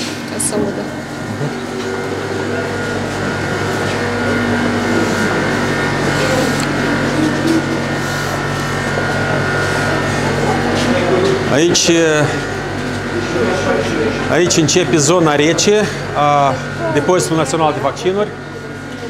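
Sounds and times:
refrigeration equipment humming: 0.0 - 19.0
faint voices: 0.3 - 19.0
footsteps: 1.1 - 9.8.

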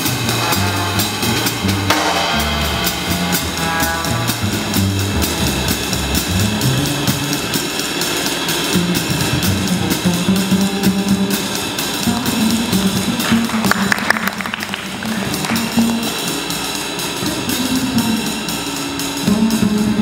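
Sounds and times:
plucked double bass: 0.0 - 7.6, 8.6 - 18.5, 19.2 - 20.0
drum kit cymbals: 0.0 - 20.0.

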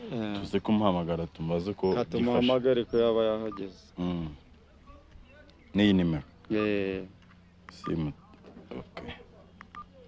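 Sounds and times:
phone keypad beeps: 9.7 - 10.0.

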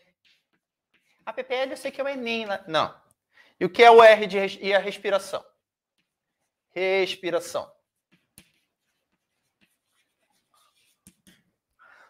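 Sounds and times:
chalk scratching on blackboard: 8.1 - 11.5.

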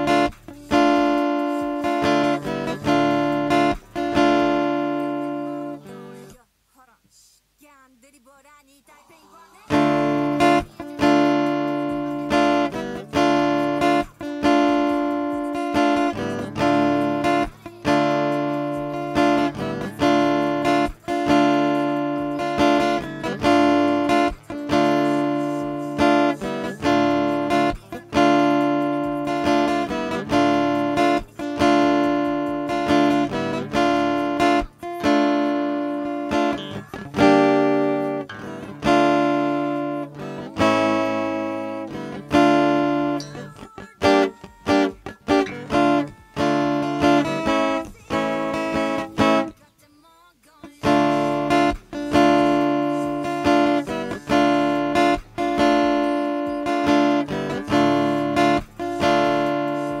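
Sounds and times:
acoustic guitar strumming: 0.0 - 6.4, 9.7 - 49.7, 50.6 - 60.0.

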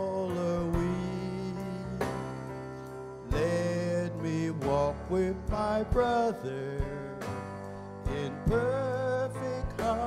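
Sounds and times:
instrumental accompaniment: 0.0 - 10.0
man singing a slow hymn: 0.0 - 10.0.

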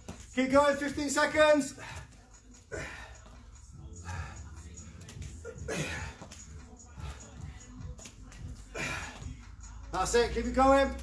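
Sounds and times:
person breathing hard: 1.7 - 9.8.

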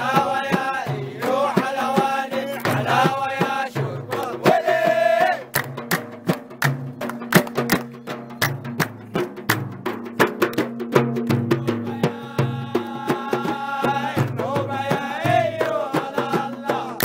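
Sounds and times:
man singing: 0.0 - 5.5, 11.4 - 17.0
frame drums fast rhythm: 0.0 - 17.0.

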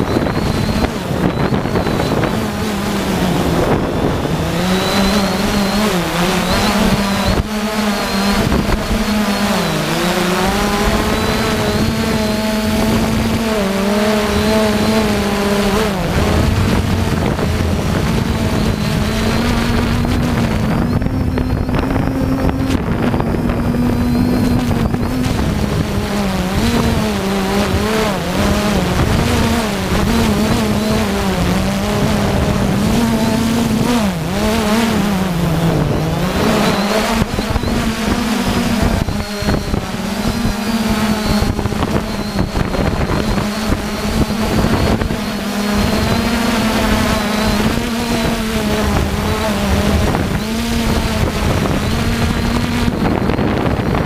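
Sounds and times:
drone propellers buzzing: 0.0 - 54.0
wind noise on microphone: 0.0 - 54.0.

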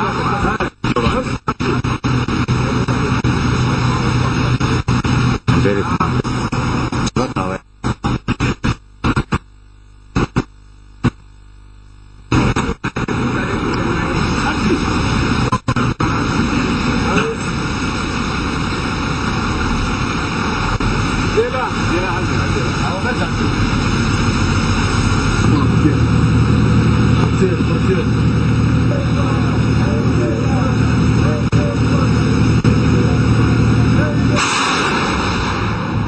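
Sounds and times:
truck engine running: 0.0 - 7.1, 12.4 - 36.0
faint voices: 0.0 - 7.6, 12.9 - 34.4.

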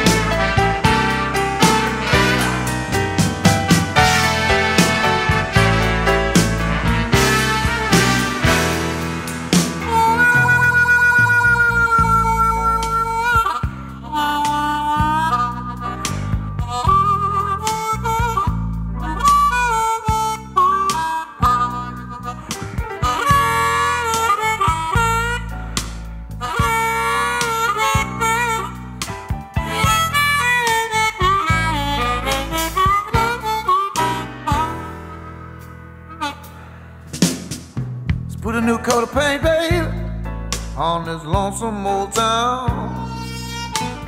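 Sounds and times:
harmonica solo: 0.0 - 37.2, 41.8 - 44.0
band bass and beat: 0.0 - 44.0.

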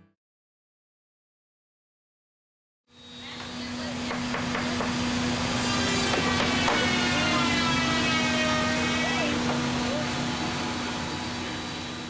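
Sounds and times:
machinery hum: 2.9 - 12.0.

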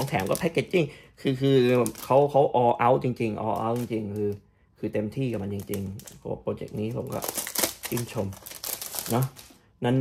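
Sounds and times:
plastic bag crinkling: 0.0 - 4.4, 5.2 - 9.6.

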